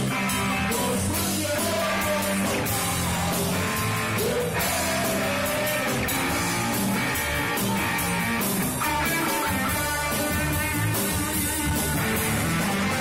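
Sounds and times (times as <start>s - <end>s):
drum kit: 0.0s - 13.0s
electric guitar: 0.0s - 13.0s
live rock band playing: 0.0s - 13.0s.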